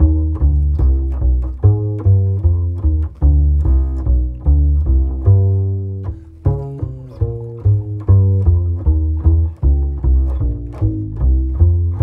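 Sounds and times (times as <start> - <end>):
double bass plucked pizzicato: 0.0 - 12.0.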